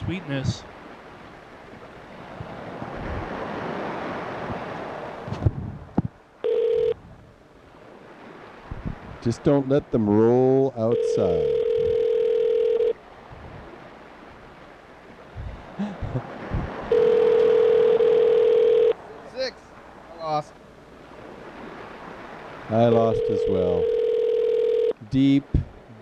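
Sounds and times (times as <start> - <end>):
telephone ringback tone: 6.4 - 7.0, 10.8 - 13.0, 16.9 - 19.0, 22.9 - 25.0.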